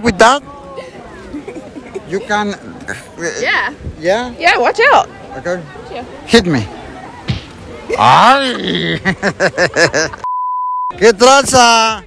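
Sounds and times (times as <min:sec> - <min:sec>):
woman laughing: 0:07.9 - 0:10.3
censor bleep: 0:10.2 - 0:11.0.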